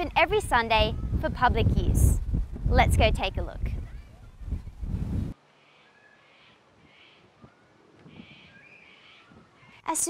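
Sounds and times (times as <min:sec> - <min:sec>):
harsh bird calls: 0:05.5 - 0:09.9.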